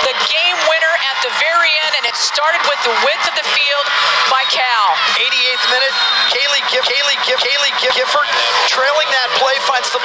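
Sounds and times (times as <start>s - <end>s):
sports commentator speaking: 0.0s - 10.0s.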